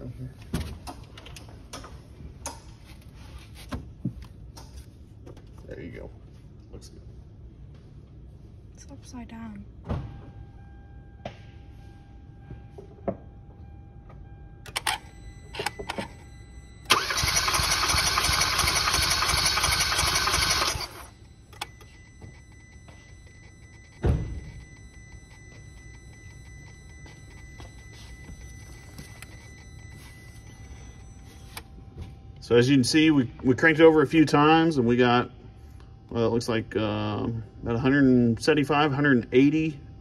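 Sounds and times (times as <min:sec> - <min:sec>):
engine cranking without starting: 0:16.9 - 0:21.1.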